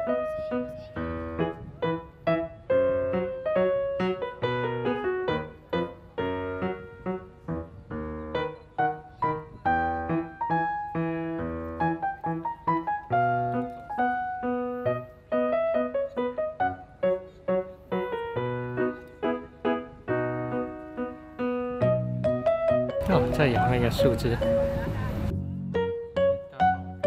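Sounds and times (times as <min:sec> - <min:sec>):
gentle piano music: 0:00.0 - 0:27.0.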